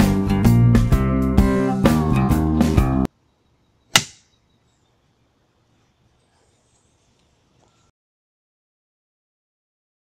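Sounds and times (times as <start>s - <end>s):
clapperboard snapping shut: 3.9s - 4.3s.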